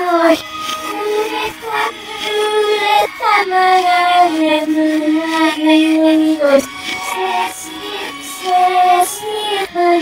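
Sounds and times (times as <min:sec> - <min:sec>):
reversed high singing voice: 0:00.0 - 0:10.0.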